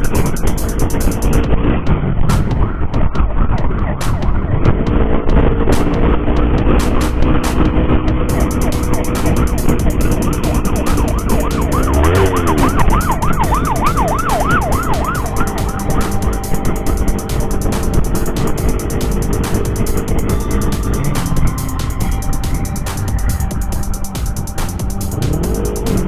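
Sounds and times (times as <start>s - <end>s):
wind noise: 0.0s - 25.5s
motorcycle engine: 0.0s - 26.0s
emergency siren yelping: 8.3s - 26.0s.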